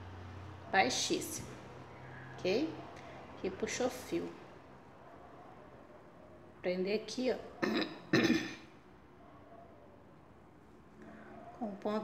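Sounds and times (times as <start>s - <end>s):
woman clearing throat: 7.6s - 8.6s.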